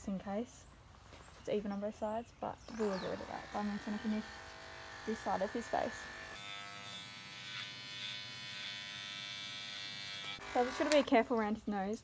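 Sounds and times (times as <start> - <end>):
electric clippers buzzing: 2.7 - 11.2.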